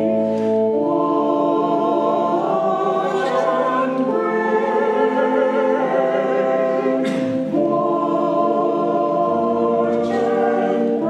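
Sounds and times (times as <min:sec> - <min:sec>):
congregation singing a hymn: 0:00.0 - 0:11.0
electronic keyboard: 0:00.0 - 0:11.0.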